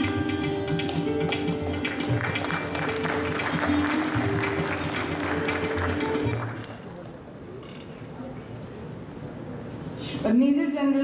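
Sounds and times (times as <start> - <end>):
instrumental music with held notes: 0.0 - 6.7
applause: 0.8 - 7.2.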